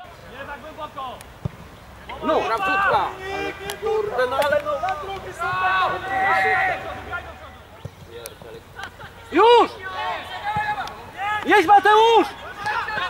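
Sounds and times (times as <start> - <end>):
people calling out indistinctly: 2.1 - 7.7.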